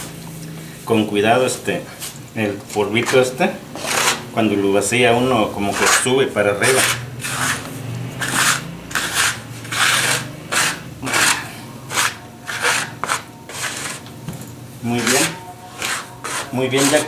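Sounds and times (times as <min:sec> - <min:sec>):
dough scraping on wooden table: 0:03.8 - 0:04.2, 0:05.7 - 0:14.1, 0:15.0 - 0:17.0.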